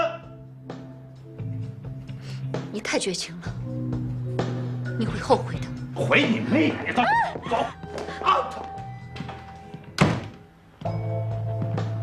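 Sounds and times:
soft background music: 0.0 - 12.0
wooden door slamming shut: 10.0 - 10.4.

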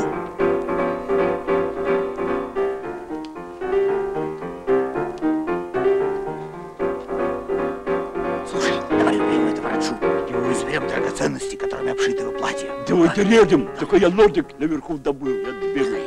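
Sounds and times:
piano notes: 0.0 - 16.0.

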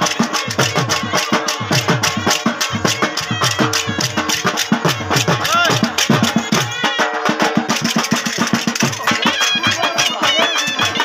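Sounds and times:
fast drum beat: 0.0 - 11.0
folk dance music: 0.0 - 11.0.

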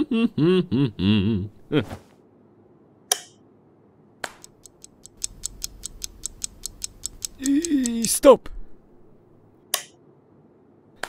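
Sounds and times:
person humming: 0.0 - 2.0, 7.3 - 8.1
quick mechanical clicks: 4.4 - 8.2.

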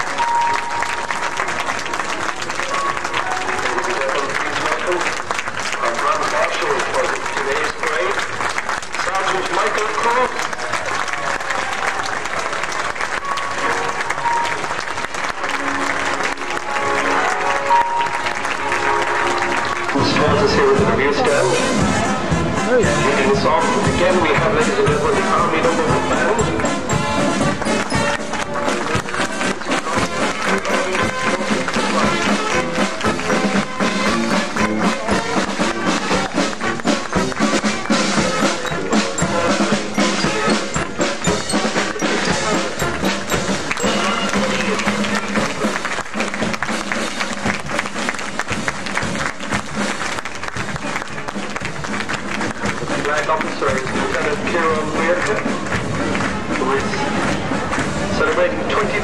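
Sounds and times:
crowd noise: 0.0 - 59.0
marching band playing: 0.0 - 59.0
people clapping: 0.0 - 59.0
drums keeping a beat: 19.5 - 59.0.

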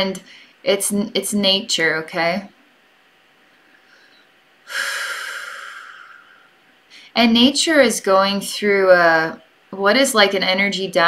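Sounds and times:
woman breathing out: 3.8 - 7.1.

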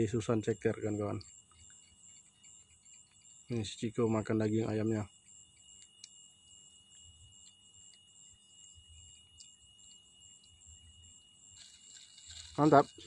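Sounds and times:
high-pitched insect trill: 0.0 - 13.0.

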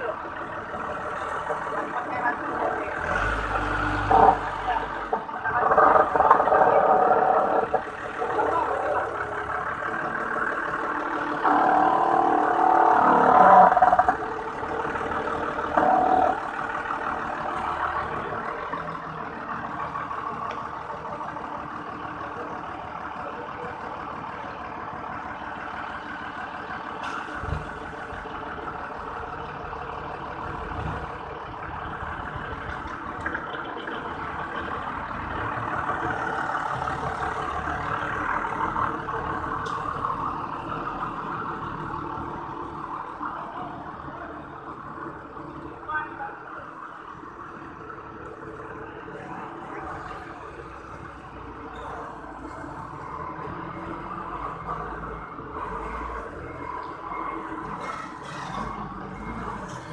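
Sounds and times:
forklift engine running: 0.0 - 59.9.

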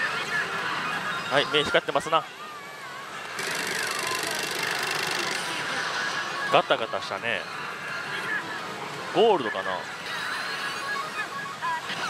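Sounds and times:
machine gimmick rattling: 3.4 - 5.5.

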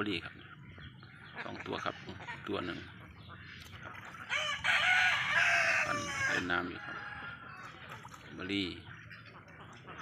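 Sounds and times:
rooster crowing: 4.3 - 7.4.

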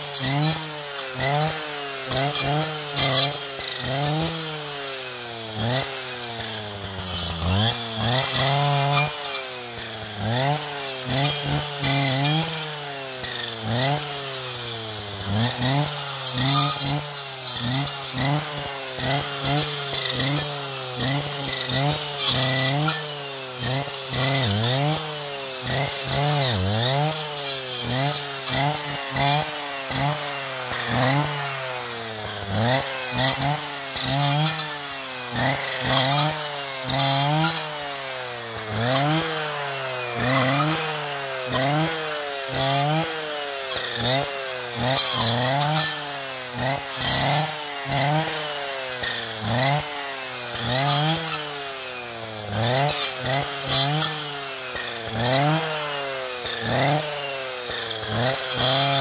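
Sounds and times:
brushcutter engine revving: 0.0 - 59.0.

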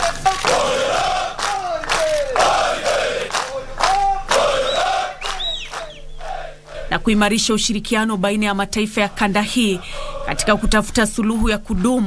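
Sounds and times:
soldiers shouting a chant: 0.0 - 7.0.

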